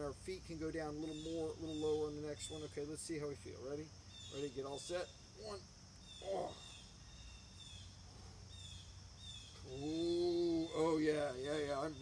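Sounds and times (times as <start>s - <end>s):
high falling bird chirps: 1.0s - 3.0s, 4.1s - 12.0s.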